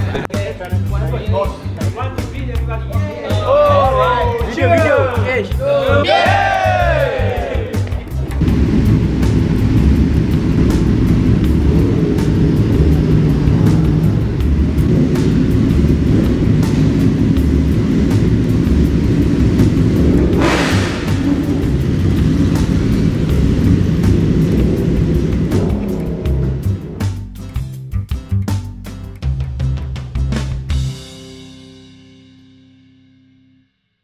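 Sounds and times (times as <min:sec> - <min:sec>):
motorcycle engines rumbling: 0:00.0 - 0:27.8
background music: 0:00.0 - 0:33.6
motorcycle revving past: 0:08.4 - 0:27.3.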